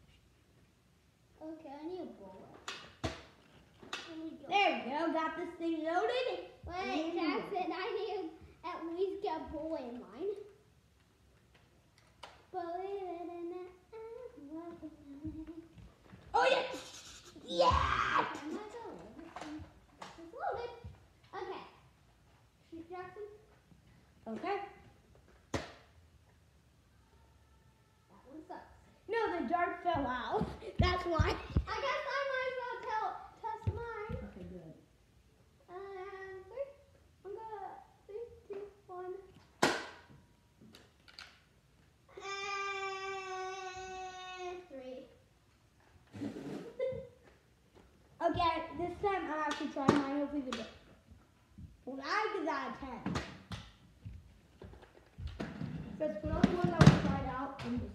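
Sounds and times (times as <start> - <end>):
child making wordless sounds: 1.4 - 2.6, 4.1 - 10.5, 12.5 - 15.8, 16.4 - 21.8, 27.0 - 34.8, 35.6 - 39.4, 42.1 - 45.2, 51.8 - 53.0.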